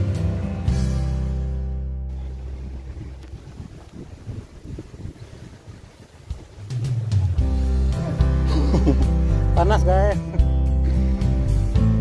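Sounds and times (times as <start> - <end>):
acoustic guitar music: 0.0 - 3.4, 6.3 - 12.0
wind buffeting microphone: 2.1 - 7.6.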